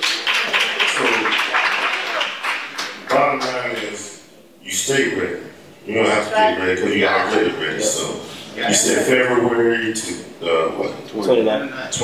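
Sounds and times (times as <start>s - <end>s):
people clapping: 0.0s - 4.2s.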